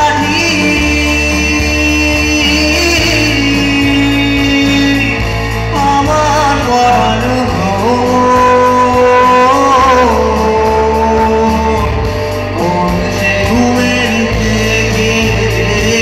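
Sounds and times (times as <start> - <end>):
electric guitar: 0.0 - 16.0
man singing into a microphone: 0.0 - 16.0
sustained bass: 0.0 - 16.0.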